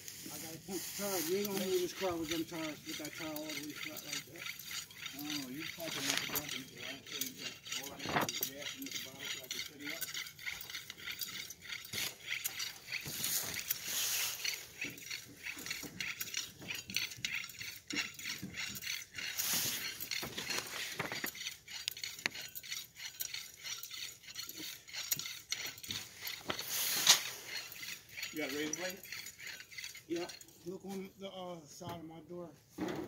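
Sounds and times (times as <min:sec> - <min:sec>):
small clicks and clinks: 0:00.3 - 0:30.8
dry leaves rustling and crunching: 0:13.0 - 0:14.6, 0:20.4 - 0:21.2.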